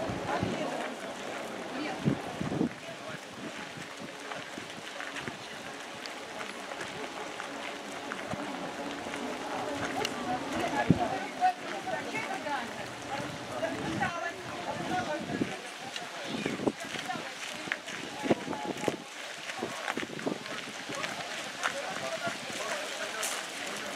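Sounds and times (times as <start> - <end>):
chatter of people talking: 0.0 - 23.9.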